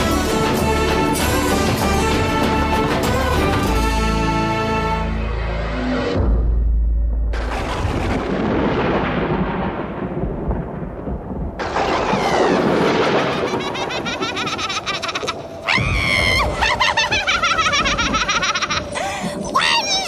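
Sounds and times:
storm noise: 5.6s - 20.0s
thunder rumbling: 7.1s - 20.0s.

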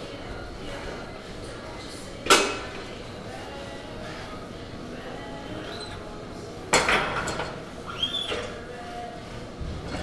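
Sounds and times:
gym room noise: 0.0s - 10.0s.

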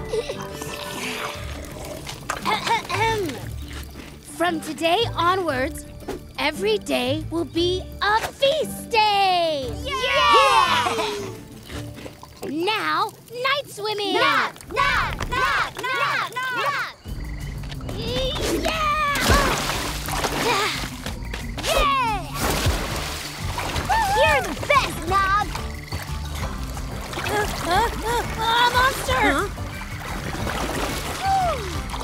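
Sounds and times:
children cheering: 9.8s - 11.3s, 14.1s - 17.0s, 23.9s - 24.7s, 31.1s - 31.8s
water spat out splashing: 19.1s - 21.0s, 22.3s - 24.7s.

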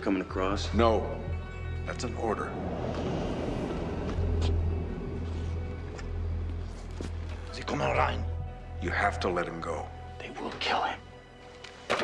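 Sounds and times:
low droning music: 0.0s - 12.0s.

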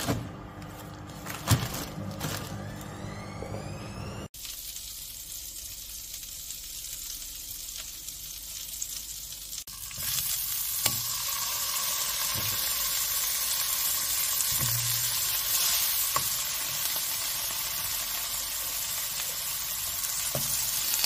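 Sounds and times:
sausages sizzling in hot oil: 4.3s - 21.0s.

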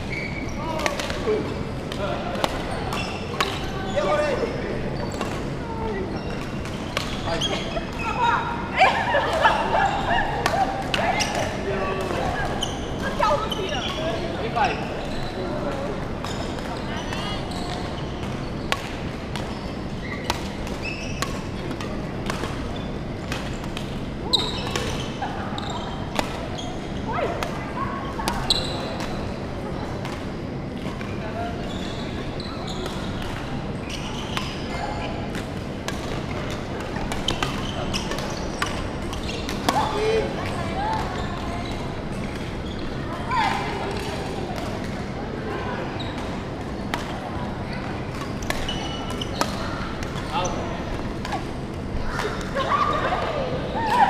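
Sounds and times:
players' voices: 0.0s - 54.0s
rackets hitting shuttlecock: 0.8s - 3.7s, 48.1s - 50.3s.

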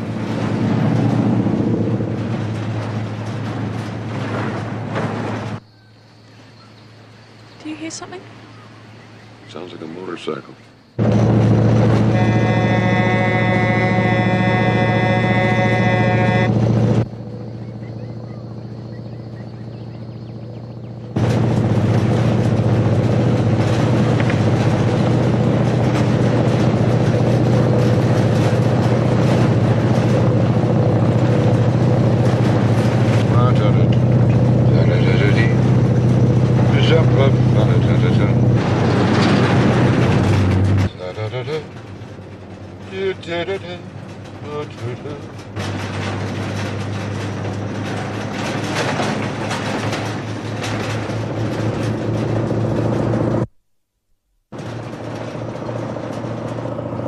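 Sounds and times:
truck diesel engine rolling: 0.0s - 53.5s, 54.5s - 57.0s
truck horn blast: 11.0s - 17.1s.

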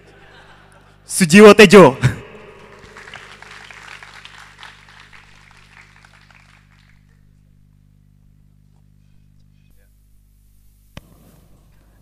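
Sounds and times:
audience applauding: 2.4s - 7.4s.

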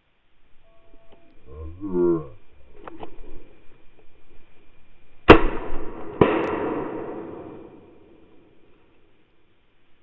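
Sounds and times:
shotgun shots echoing: 5.3s - 8.6s.

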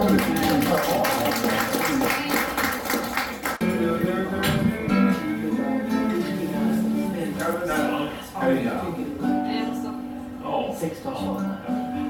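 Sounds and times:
people applauding: 0.0s - 3.6s
voices: 0.0s - 12.0s
song: 3.6s - 8.2s.

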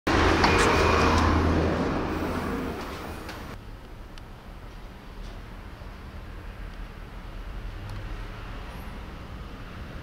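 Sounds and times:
road traffic rumble: 0.1s - 10.0s.

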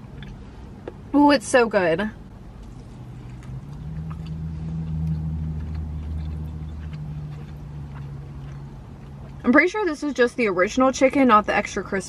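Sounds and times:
low vehicle engine hum: 0.0s - 12.0s
faint chewing of crispy food: 2.5s - 9.6s.

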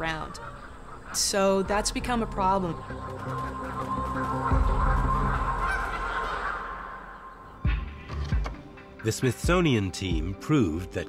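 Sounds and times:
geese honking: 0.0s - 8.9s.

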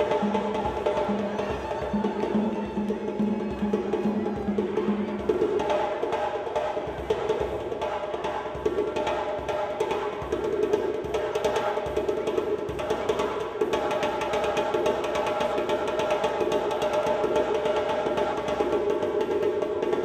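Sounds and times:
djembe hand drumming: 0.0s - 20.0s.

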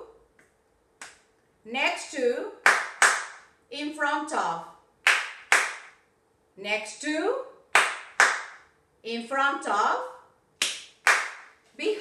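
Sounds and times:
sharp hand claps: 0.4s - 1.3s, 2.6s - 3.5s, 5.0s - 6.0s, 7.8s - 8.7s, 10.6s - 11.6s
person speaking words: 11.8s - 12.0s.

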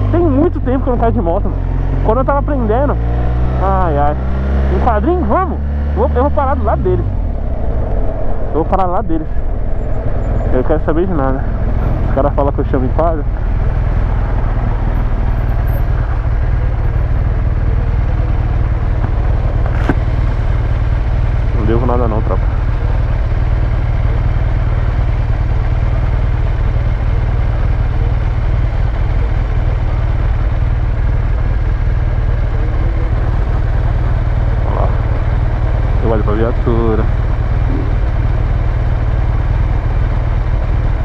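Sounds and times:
voices: 0.0s - 20.8s, 21.4s - 24.9s, 27.3s - 38.3s
motorcycle engine idling: 0.0s - 41.0s.

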